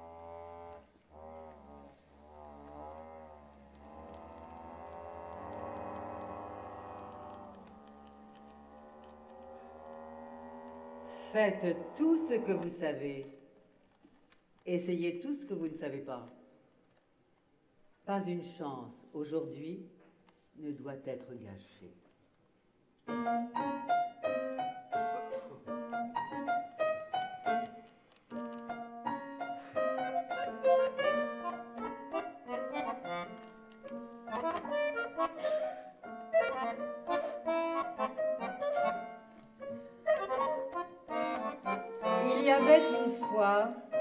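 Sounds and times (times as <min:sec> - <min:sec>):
grand piano: 0:00.0 - 0:13.1, 0:23.0 - 0:44.0
accordion: 0:23.4 - 0:44.0.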